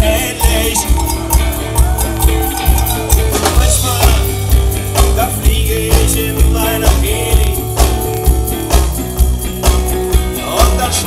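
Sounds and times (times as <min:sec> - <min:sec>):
drum hits: 0:00.0 - 0:10.9
live rock band playing: 0:00.0 - 0:11.0.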